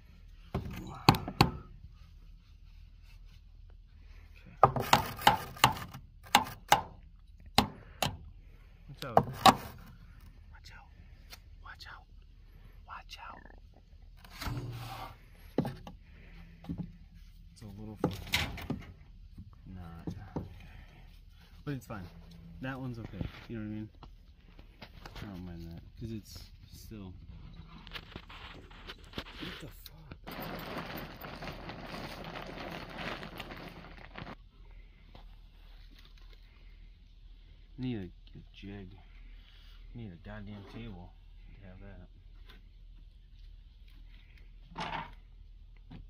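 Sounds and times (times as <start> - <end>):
canvas tarp rustling and crackling: 28.0 - 34.4.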